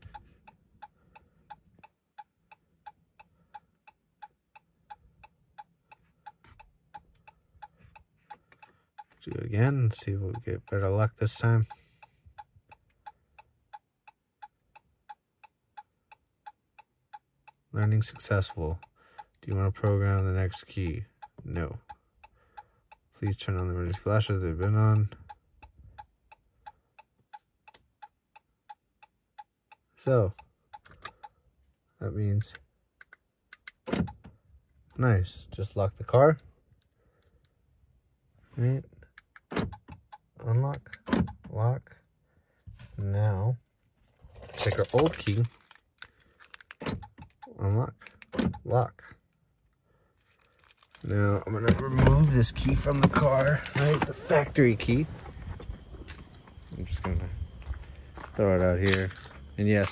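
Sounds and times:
turn signal ticking: 0.0s - 35.0s, 39.0s - 42.2s, 46.7s - 49.4s, 50.6s - 59.9s
hazard flashers ticking: 50.4s - 55.1s.

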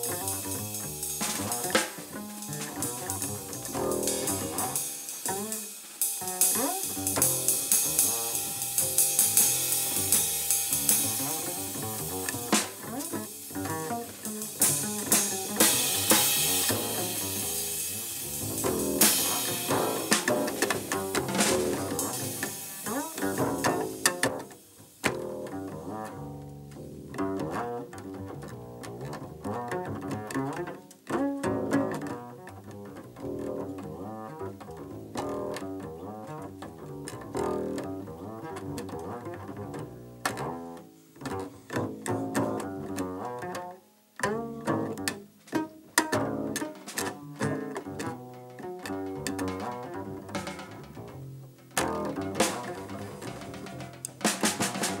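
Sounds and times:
jazz group playing: 0.0s - 55.0s
plucked double bass: 0.0s - 55.0s.

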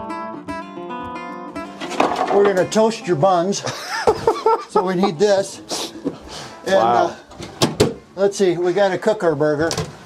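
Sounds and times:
acoustic guitar music: 0.0s - 8.2s.

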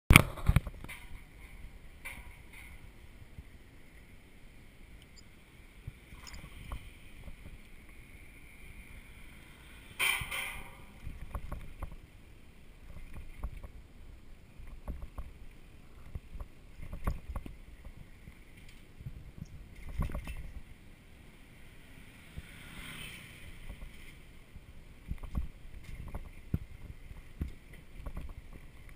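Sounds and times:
bicycle knocks and rattles: 0.1s - 2.9s, 10.0s - 12.0s, 16.0s - 18.9s, 19.7s - 20.7s, 25.0s - 28.9s
low rumble of tyres and wind: 0.1s - 28.9s.

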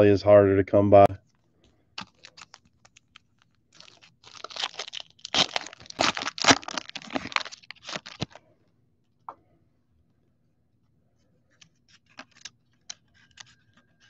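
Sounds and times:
wrapper crinkling and tearing: 2.0s - 8.4s, 11.9s - 13.6s.

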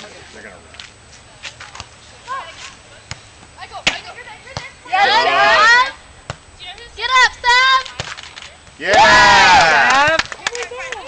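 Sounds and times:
volleyball being struck: 3.1s - 4.8s, 8.8s - 10.3s.

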